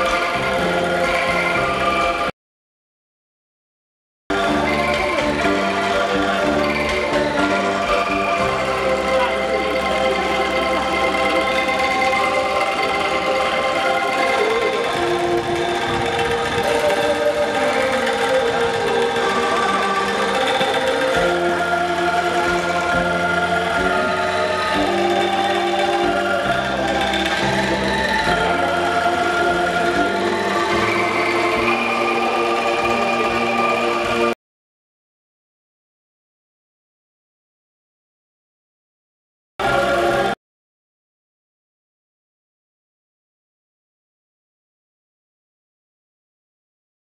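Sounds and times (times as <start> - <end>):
angklung ensemble rattling chords: 0.0 - 2.3, 4.3 - 34.3.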